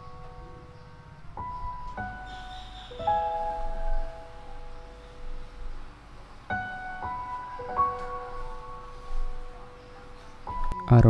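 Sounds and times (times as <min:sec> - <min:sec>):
piano chord: 0:00.0 - 0:11.0.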